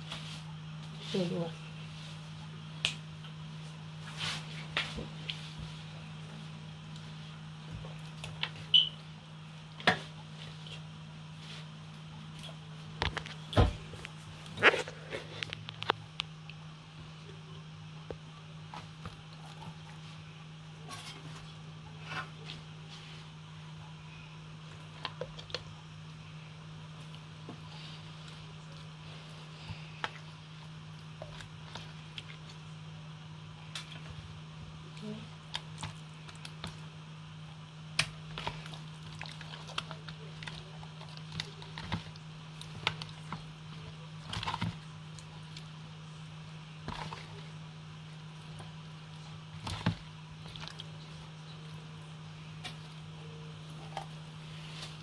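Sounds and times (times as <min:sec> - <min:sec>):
steady low hum: 0:00.0 - 0:55.0.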